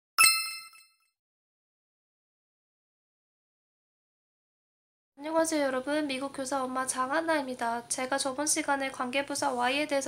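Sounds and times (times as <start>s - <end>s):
bright metallic ding: 0.2s - 1.0s.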